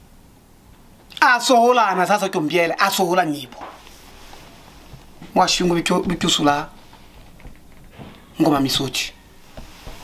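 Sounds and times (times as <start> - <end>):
man speaking: 1.1 - 3.7, 5.3 - 6.8, 8.4 - 9.2.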